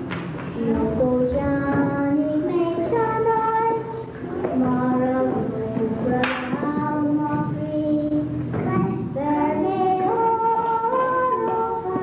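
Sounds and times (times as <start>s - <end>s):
girl singing long notes: 0.6s - 12.0s.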